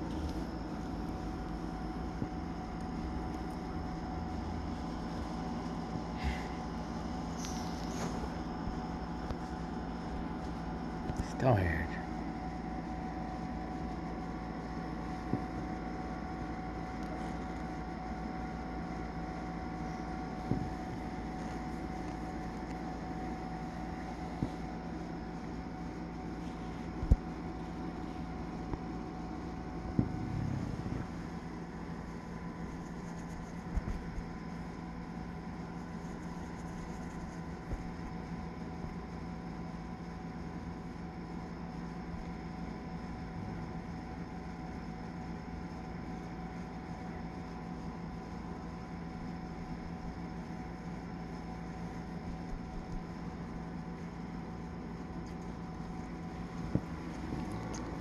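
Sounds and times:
steady mechanical hum: 0.0s - 58.0s.

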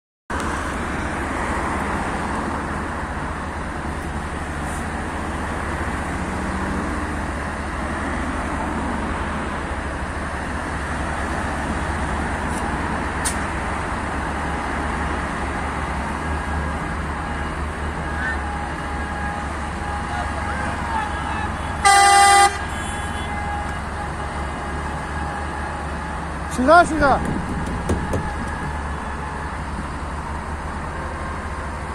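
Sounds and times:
road traffic: 0.3s - 31.9s
tractor diesel engines rumbling: 0.3s - 31.9s
vehicle horn blast: 18.2s - 24.5s.

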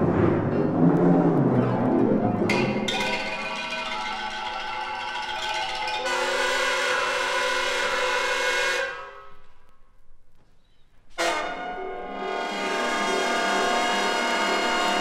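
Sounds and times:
orchestral chords: 0.0s - 9.0s.

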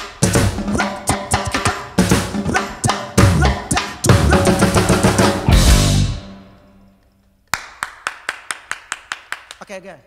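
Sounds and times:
live reggae band playing: 0.0s - 6.8s.

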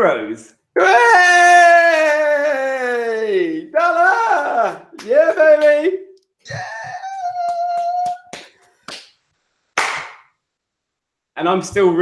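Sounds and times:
man crying out in celebration: 0.8s - 8.4s.

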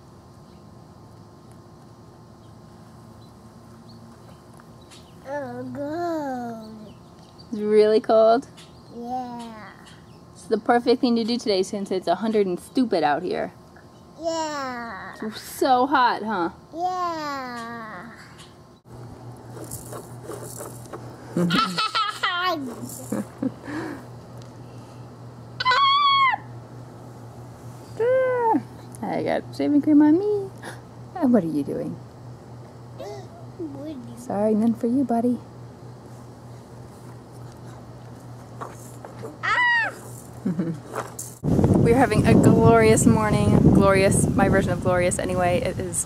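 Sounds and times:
child's high-pitched squeal: 25.6s - 26.5s, 39.4s - 40.1s.

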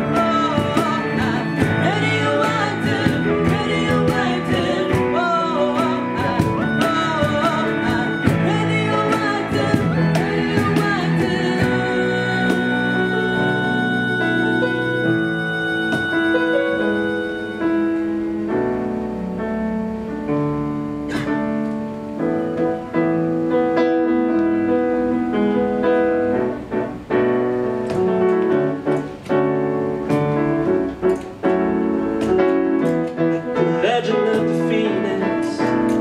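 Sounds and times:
electric keyboard chords: 0.0s - 36.0s
guitars: 0.0s - 36.0s.

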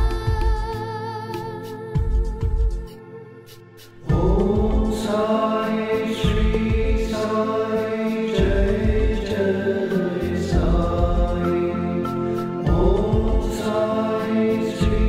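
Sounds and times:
sung mantra: 4.0s - 15.0s
low bass beats: 4.1s - 5.2s, 6.2s - 7.3s, 8.4s - 9.5s, 10.3s - 11.6s, 12.5s - 13.6s.

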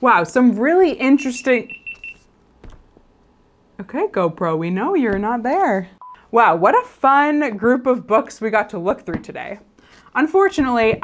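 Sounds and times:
woman speaking: 0.0s - 1.8s, 3.8s - 11.0s
high electronic beep: 1.4s - 2.2s.

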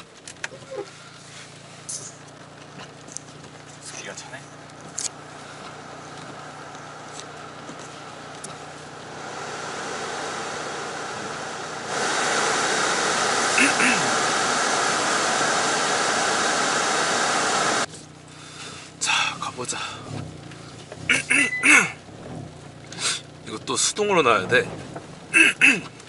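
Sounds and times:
car engine idling: 0.0s - 26.0s
air blower rushing: 9.0s - 17.9s.

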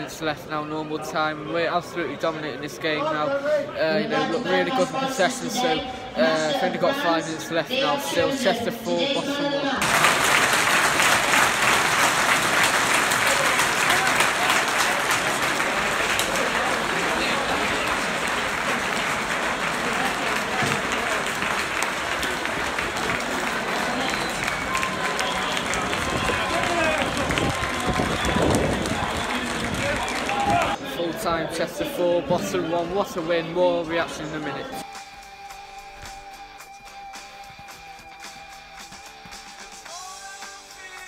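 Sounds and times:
crowd applauding: 9.8s - 30.8s.

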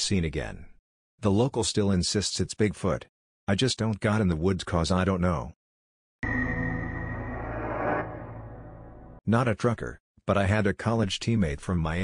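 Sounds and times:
synthesized chord sting: 6.2s - 9.2s.

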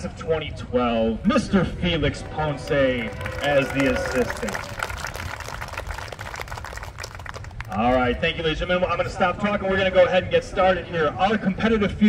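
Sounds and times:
audience applause: 2.4s - 8.0s.

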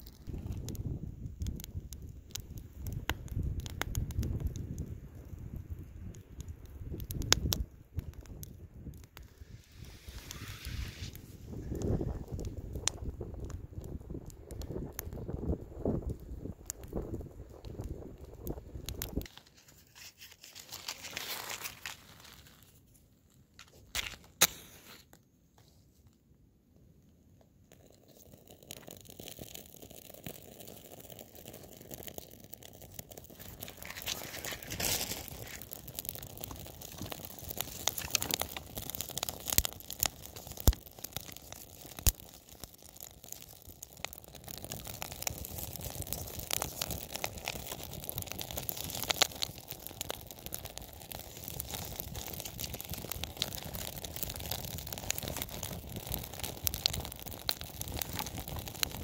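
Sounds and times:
fire crackling: 0.0s - 59.0s
fire popping: 0.0s - 59.0s.

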